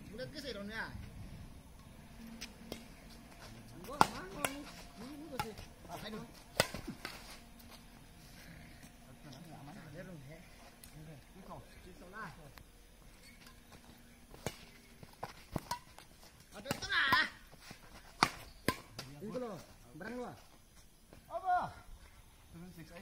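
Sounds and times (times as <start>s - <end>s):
rackets hitting shuttlecock: 1.8s - 7.8s, 13.3s - 19.2s.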